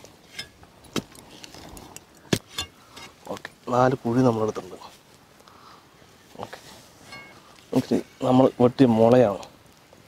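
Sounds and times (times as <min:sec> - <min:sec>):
charcoal crackling: 0:00.0 - 0:10.0
faint hiss: 0:00.0 - 0:10.0.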